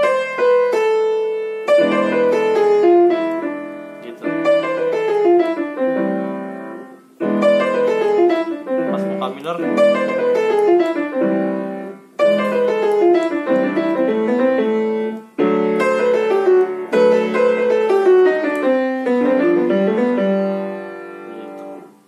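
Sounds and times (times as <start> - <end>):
piano jazz-gospel licks: 0.0 - 22.0.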